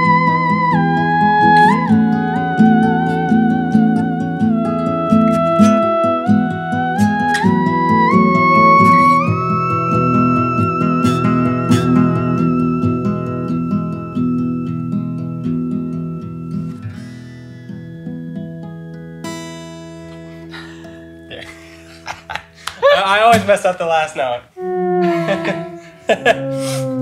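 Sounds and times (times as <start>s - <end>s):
theremin sliding up: 0.0s - 16.8s, 24.6s - 27.0s
strummed acoustic guitar: 0.0s - 23.8s.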